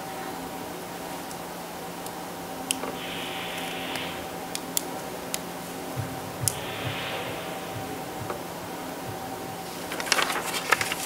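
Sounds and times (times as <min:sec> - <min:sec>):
steady electrical hum: 0:00.0 - 0:11.0
paper rustling: 0:06.6 - 0:11.0.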